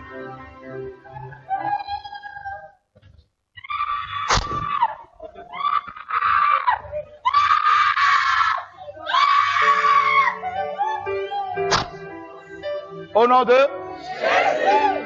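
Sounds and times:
keyboard: 0.0s - 2.7s, 8.0s - 15.0s
sharp click: 11.7s - 12.0s.

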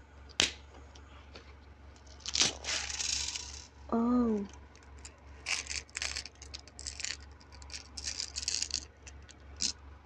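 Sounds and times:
plastic beads clicking and rattling: 2.0s - 3.7s, 4.7s - 9.8s.

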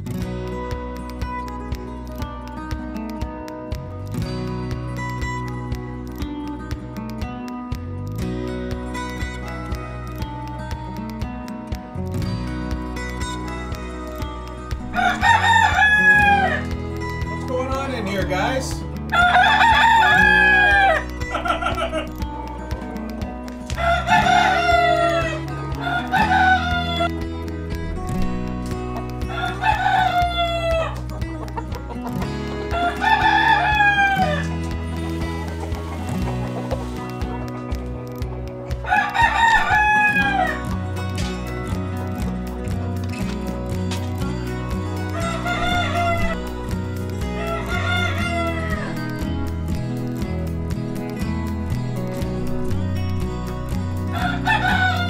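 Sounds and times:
background music with steady beat: 0.0s - 55.0s
roosters crowing: 14.9s - 17.2s, 19.1s - 22.4s, 23.0s - 27.4s, 29.1s - 37.8s, 38.8s - 40.8s, 45.0s - 49.6s, 54.0s - 55.0s
hens clucking: 19.2s - 27.2s, 28.9s - 40.6s, 45.0s - 49.6s.

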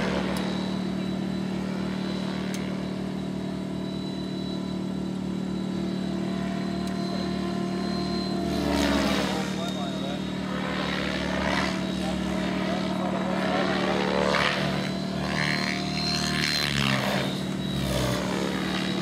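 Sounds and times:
rc helicopter engine and rotors: 0.0s - 19.0s.

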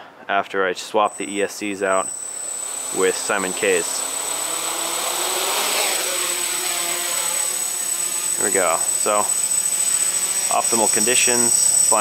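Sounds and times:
thin high whine: 1.0s - 12.0s
quadcopter motors and propellers: 1.1s - 12.0s.

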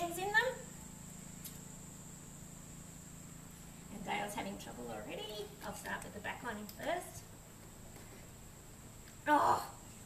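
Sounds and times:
high-pitched whine: 0.0s - 5.3s
low hum: 0.0s - 10.0s.

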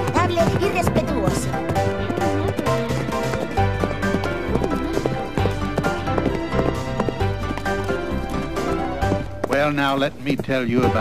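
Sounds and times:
cartoon background music: 0.0s - 11.0s
galloping horse hooves clip-clop: 0.0s - 11.0s.

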